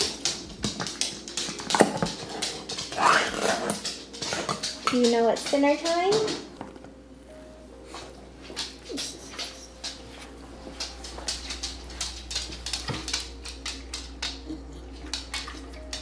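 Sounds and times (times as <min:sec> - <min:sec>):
dog claws clicking on wood floor: 0:00.0 - 0:06.9, 0:08.4 - 0:16.0.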